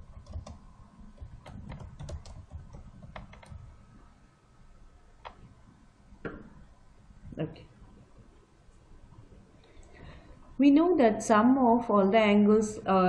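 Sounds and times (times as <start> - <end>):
typing on computer keyboard: 0.0 - 3.7.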